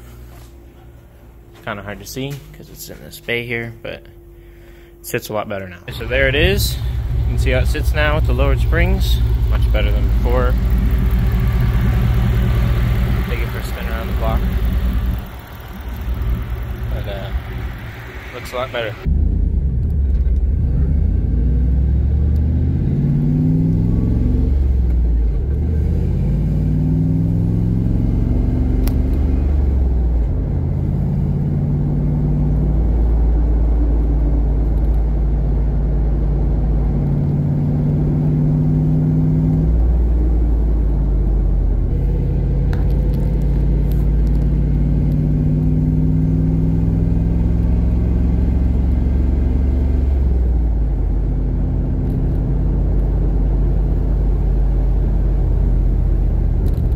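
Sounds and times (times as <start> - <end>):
car engine accelerating through gears: 5.9 - 56.9.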